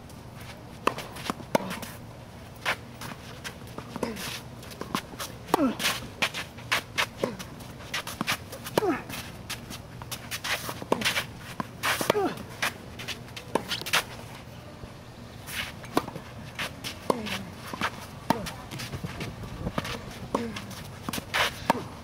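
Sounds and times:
racket striking tennis ball: 0:00.8 - 0:02.0, 0:03.7 - 0:14.2, 0:15.5 - 0:22.0
tennis ball bouncing: 0:00.8 - 0:02.0, 0:02.6 - 0:14.2, 0:15.8 - 0:22.0
footsteps on hard court: 0:02.6 - 0:14.4, 0:15.5 - 0:22.0.

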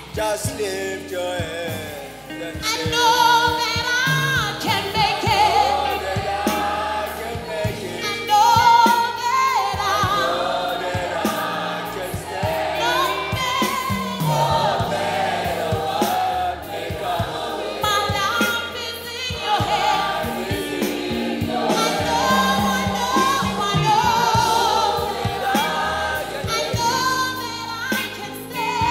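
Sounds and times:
congregation singing gospel song: 0:00.0 - 0:28.9
instrumental backing with steady beat: 0:00.0 - 0:28.9.

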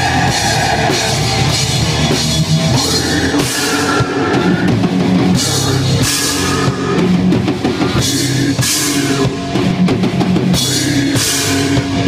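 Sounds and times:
drum kit and crashing cymbals: 0:00.0 - 0:12.0
heavy rock music: 0:00.0 - 0:12.0.

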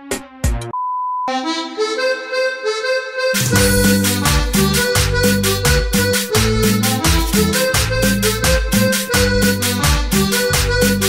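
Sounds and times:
steady test-tone beep: 0:00.8 - 0:01.3
held notes stepping in pitch: 0:01.3 - 0:11.0.

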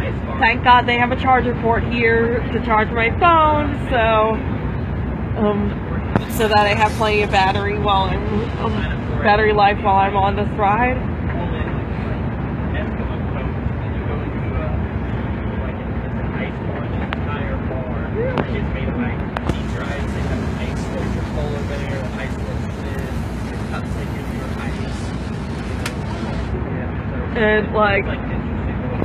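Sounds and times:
bus engine rumble and road noise: 0:00.0 - 0:29.0
faint passenger voices: 0:00.0 - 0:29.0.

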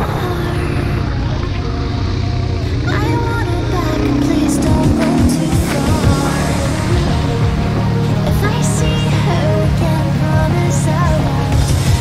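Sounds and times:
electronic music with singing: 0:00.0 - 0:12.0
motorcycle engine running: 0:00.0 - 0:12.0.

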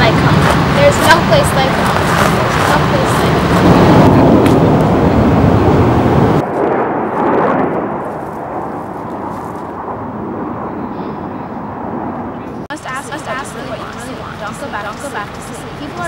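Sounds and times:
loud wind-like rushing noise: 0:00.0 - 0:14.9.

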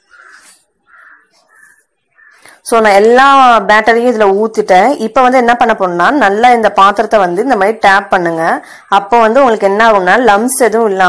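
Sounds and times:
crow cawing: 0:00.0 - 0:02.6.

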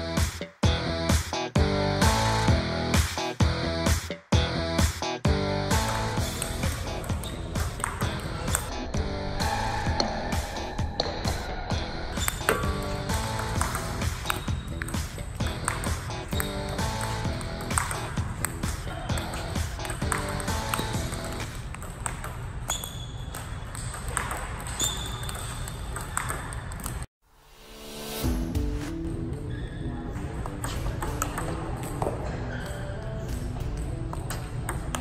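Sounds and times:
background music: 0:00.0 - 0:21.7, 0:27.4 - 0:35.0
table tennis ball clicks: 0:13.4 - 0:27.0.

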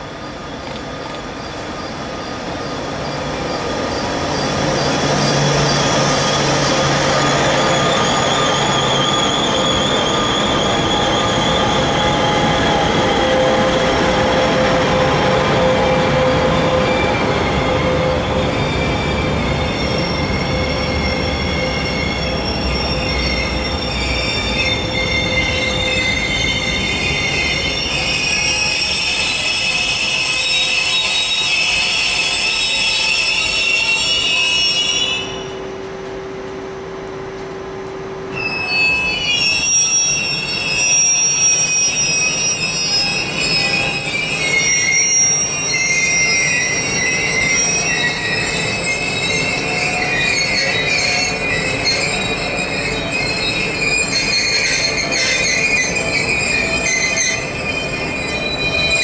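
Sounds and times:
train wheels squealing: 0:00.0 - 0:36.0, 0:38.1 - 0:59.0.

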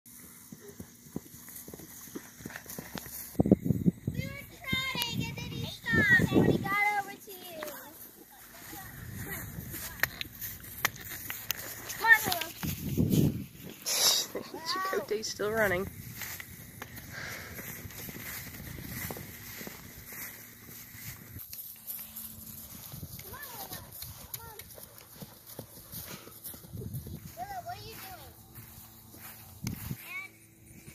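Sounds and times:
horse hoofbeats on grass: 0:00.1 - 0:30.9.

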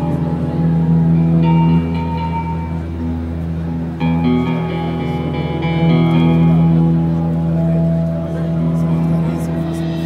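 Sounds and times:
crowd voices: 0:00.0 - 0:10.0
live band music through pa: 0:00.0 - 0:10.0.

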